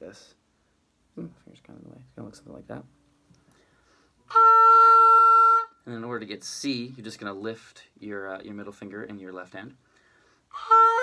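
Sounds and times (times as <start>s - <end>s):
oboe playing held note: 4.3s - 5.8s, 10.5s - 11.0s.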